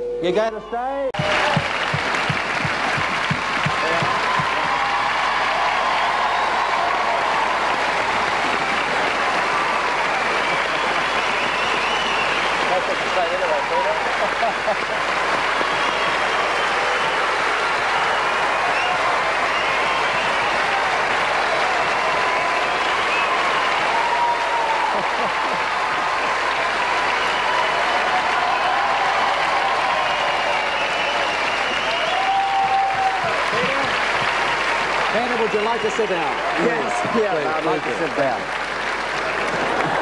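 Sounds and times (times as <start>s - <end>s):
voices cheering: 0.4s - 40.0s
audience applauding: 1.2s - 40.0s.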